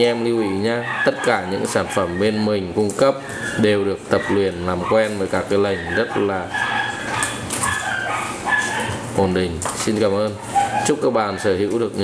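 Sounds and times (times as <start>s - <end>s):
puppy whining: 0.2s - 9.2s, 10.4s - 11.8s.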